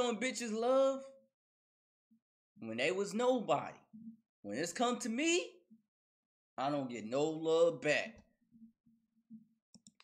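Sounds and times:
computer mouse clicks: 0:09.7 - 0:10.0.

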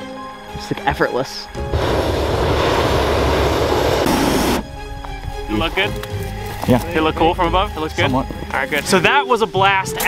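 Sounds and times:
propane burner roaring: 0:01.6 - 0:04.8.

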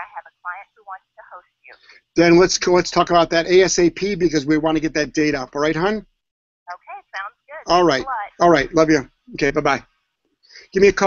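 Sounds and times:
person talking over telephone: 0:00.0 - 0:03.3, 0:06.7 - 0:09.8.

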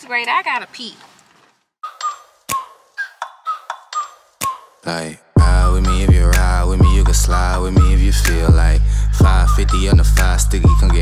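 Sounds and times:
hip-hop beat: 0:02.5 - 0:11.0.

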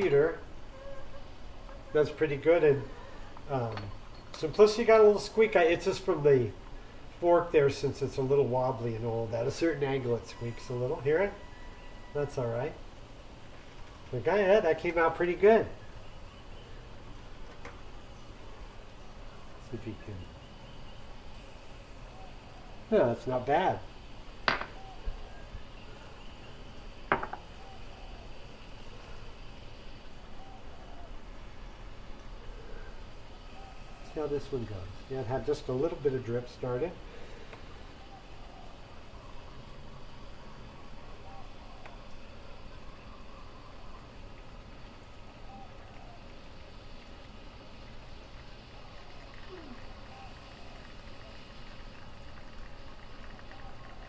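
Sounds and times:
faint background hum: 0:00.0 - 0:54.0
espresso machine hiss and trickle: 0:13.4 - 0:54.0.

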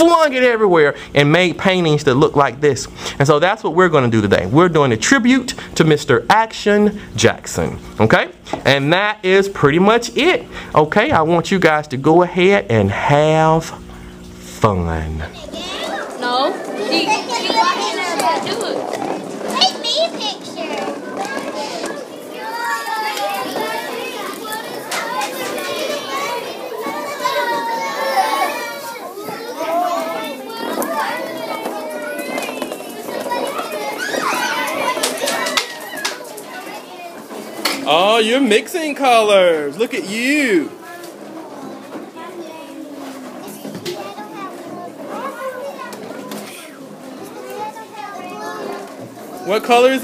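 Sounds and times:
children talking and calling out: 0:14.9 - 0:50.0.

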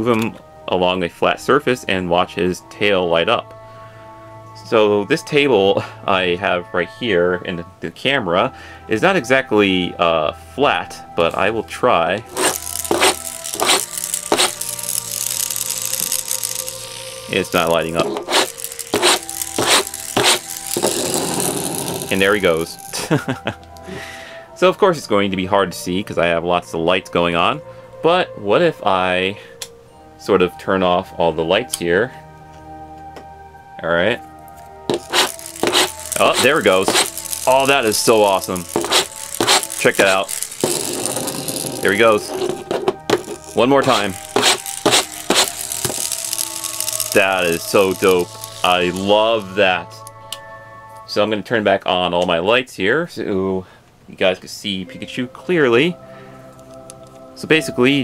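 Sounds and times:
soft background music: 0:00.0 - 0:58.0
plastic toy wheels scraping table: 0:12.3 - 0:22.4, 0:34.9 - 0:49.5.

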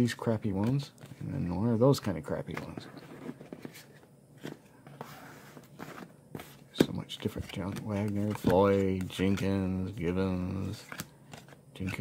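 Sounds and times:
trading cards clicking and rustling: 0:00.0 - 0:04.6, 0:05.6 - 0:12.0.

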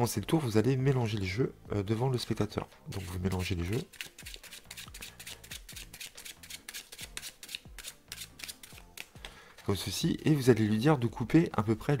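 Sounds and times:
playing cards being shuffled: 0:02.3 - 0:09.3.

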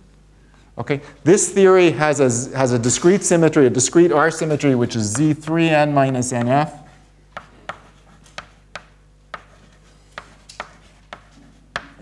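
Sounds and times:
chalk tapping on blackboard: 0:06.0 - 0:06.6, 0:07.4 - 0:12.0.

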